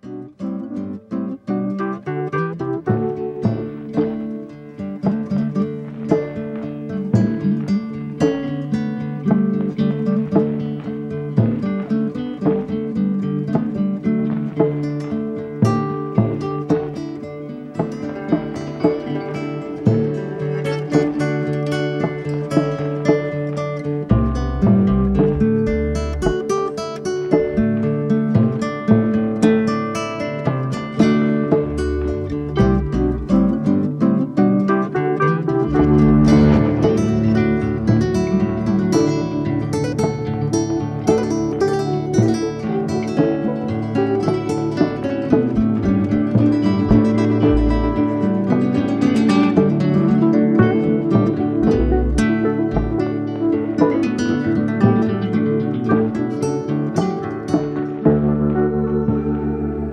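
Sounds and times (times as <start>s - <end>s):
quick plucked notes: 0.0s - 59.9s
deep bass part: 22.0s - 26.7s, 31.0s - 34.2s, 35.2s - 41.2s, 44.3s - 49.8s, 50.6s - 54.2s, 57.0s - 59.9s.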